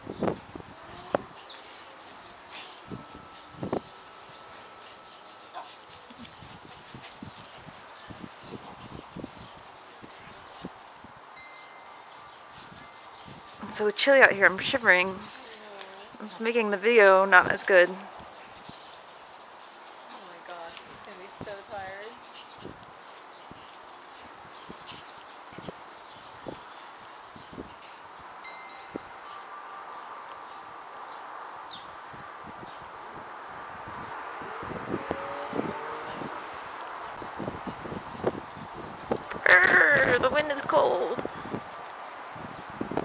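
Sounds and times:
dogs' paws tapping on turf: 0:00.0 - 0:29.4.

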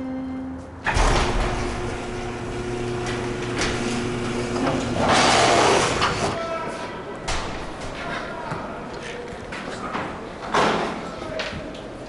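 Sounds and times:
gate mechanism clank: 0:00.8 - 0:06.4
mechanical drone and rattle: 0:00.9 - 0:06.4.

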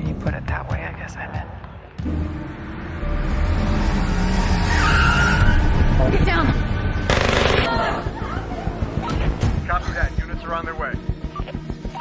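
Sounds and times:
rapid gunfire: 0:07.1 - 0:07.8.

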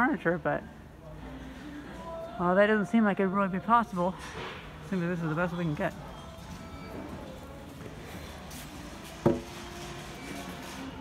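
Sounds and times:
store background hum: 0:00.0 - 0:11.0.

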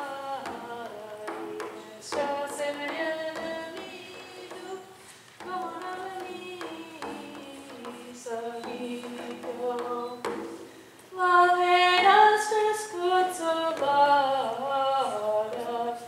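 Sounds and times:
frame drum taps: 0:00.4 - 0:10.7.

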